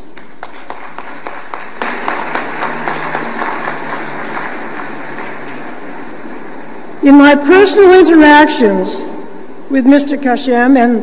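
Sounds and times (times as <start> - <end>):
audience applauding: 0.0 - 6.4.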